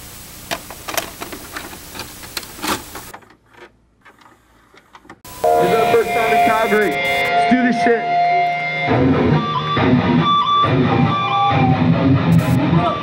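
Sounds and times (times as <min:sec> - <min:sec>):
crackling static with clicks: 0:00.0 - 0:03.1, 0:12.3 - 0:12.6
electric guitar ringing notes: 0:05.3 - 0:13.0.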